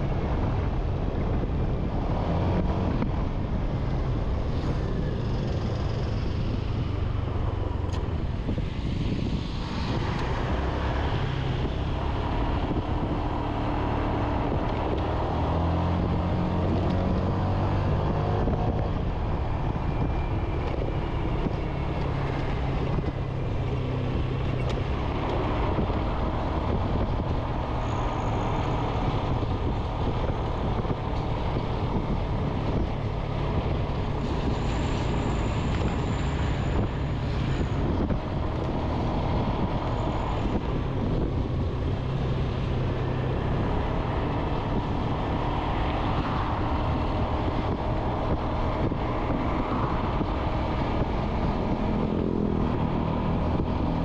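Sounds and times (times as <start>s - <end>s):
wind and road noise: 0.0s - 54.0s.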